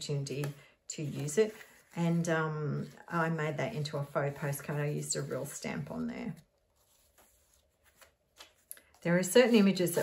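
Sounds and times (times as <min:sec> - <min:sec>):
paper pages rustling: 0:01.1 - 0:03.3, 0:03.9 - 0:10.0.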